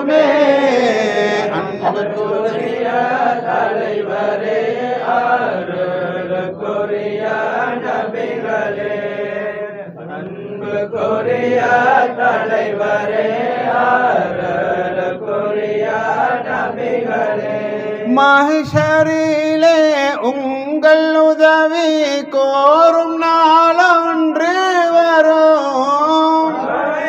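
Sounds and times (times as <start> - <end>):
men chanting devotional song: 0.0 - 27.0.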